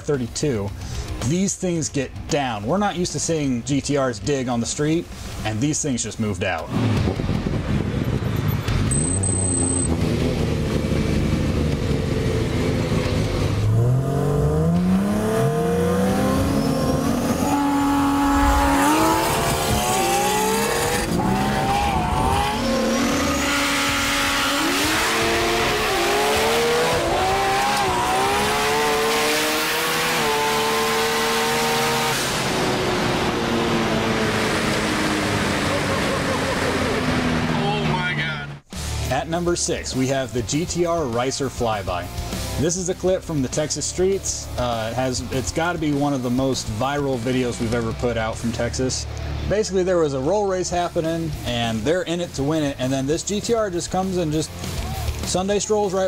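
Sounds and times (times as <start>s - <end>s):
racing car engines revving: 6.6s - 39.1s.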